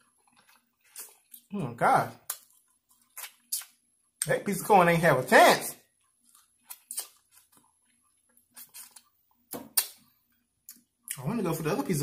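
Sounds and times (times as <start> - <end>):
chewing corn: 0.0 - 4.3, 5.8 - 11.3.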